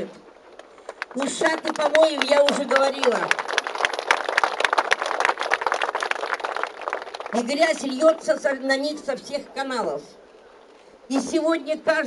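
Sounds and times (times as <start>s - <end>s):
crowd applauding: 0.9s - 8.0s.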